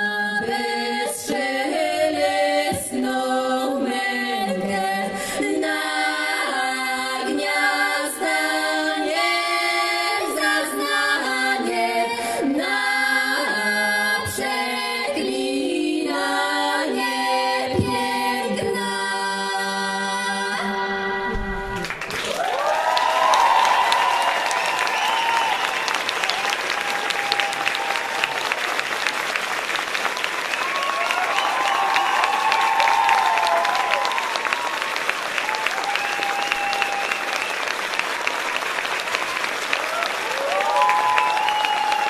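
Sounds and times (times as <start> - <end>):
women singing in harmony: 0.0 - 22.0
audience applauding: 21.8 - 42.0
people cheering: 21.8 - 42.0.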